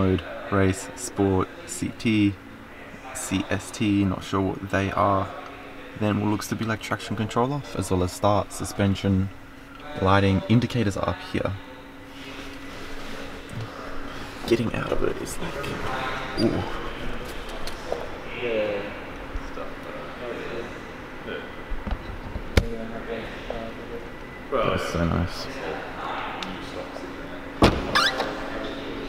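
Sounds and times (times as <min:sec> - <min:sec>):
faint hum: 0:00.0 - 0:29.0
car door slamming: 0:27.6 - 0:28.2.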